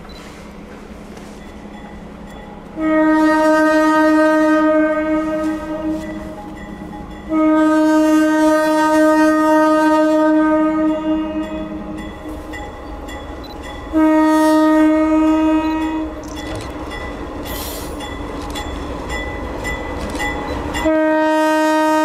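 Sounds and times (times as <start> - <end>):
locomotive air horn blasts: 2.8 - 6.4, 7.3 - 12.1, 13.9 - 16.2, 20.8 - 22.0
train wheels clicking on rails: 15.6 - 20.9.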